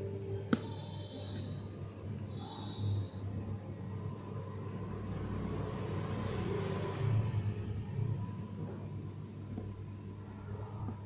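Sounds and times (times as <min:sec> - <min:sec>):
road vehicle passing: 0:02.4 - 0:09.2.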